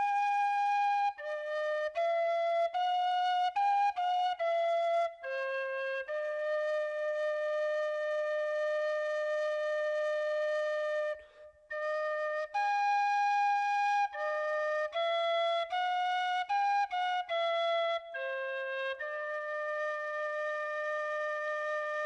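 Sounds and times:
flute-like woodwind melody: 0:00.0 - 0:22.0.

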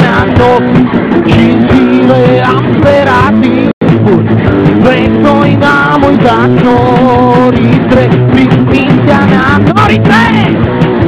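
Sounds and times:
drums: 0:00.0 - 0:11.0
electric guitar: 0:00.0 - 0:11.0.

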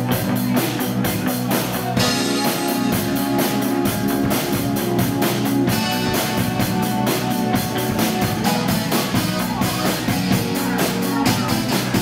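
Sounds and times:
live rock band instrumental: 0:00.0 - 0:12.0.

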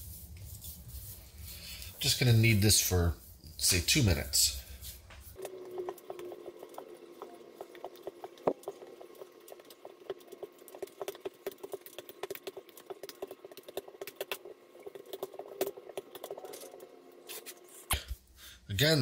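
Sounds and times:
hands kneading dough: 0:00.0 - 0:18.2.

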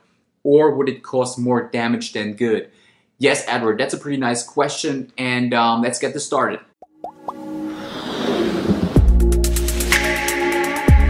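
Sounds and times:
rising pops: 0:06.8 - 0:09.3
whoosh: 0:07.3 - 0:09.6.

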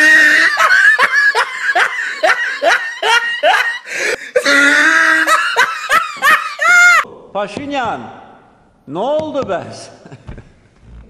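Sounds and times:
person laughing loudly: 0:00.0 - 0:07.1.

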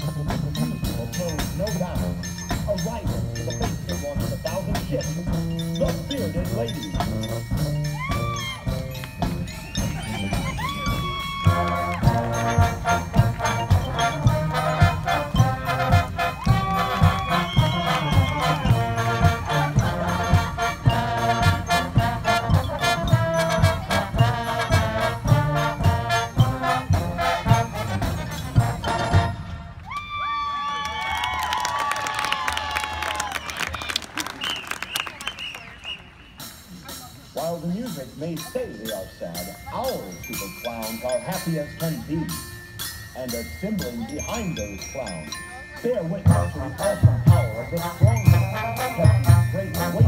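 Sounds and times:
steady drum beat: 0:00.0 - 0:29.5, 0:45.9 - 0:50.0
marching band playing: 0:00.0 - 0:29.8, 0:31.2 - 0:50.0
horns playing sliding notes: 0:05.3 - 0:29.8.

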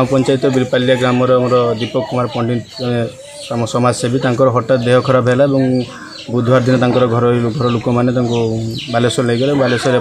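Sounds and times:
birds calling: 0:00.0 - 0:10.0
man talking: 0:00.0 - 0:10.0.

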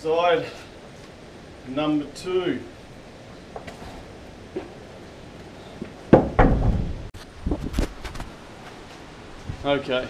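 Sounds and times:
wood knocks and clatters: 0:05.8 - 0:08.3
loud wooden thump: 0:06.1 - 0:07.1.

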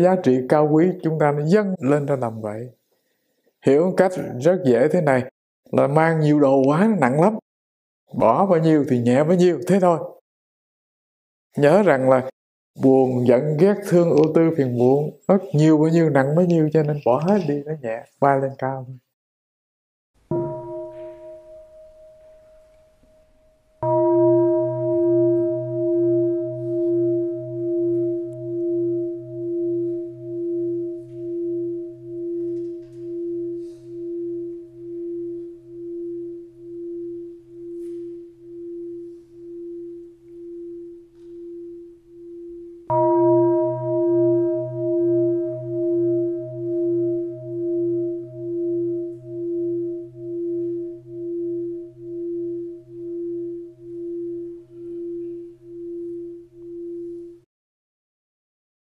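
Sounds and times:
singing bowl ringing: 0:20.3 - 0:57.5.

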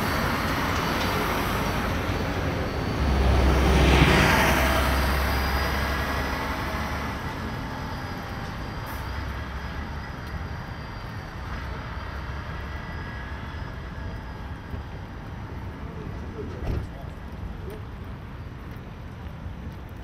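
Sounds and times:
large vehicle passing: 0:00.0 - 0:10.3
city traffic hum: 0:00.0 - 0:20.0.

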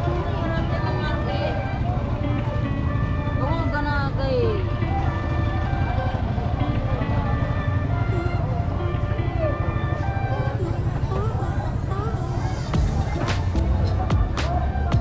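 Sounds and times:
music playing: 0:00.0 - 0:15.0
people talking: 0:00.0 - 0:15.0
vehicle engines rumbling: 0:00.0 - 0:15.0.

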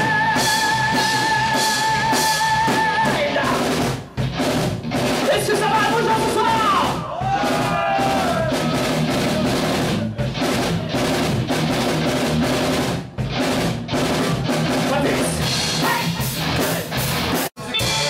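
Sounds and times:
rock music with drums: 0:00.0 - 0:18.0.

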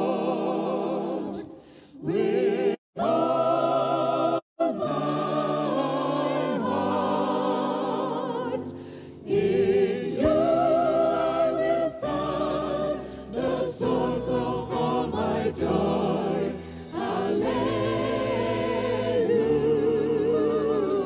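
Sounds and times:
mixed choir singing worship song: 0:00.0 - 0:21.0.

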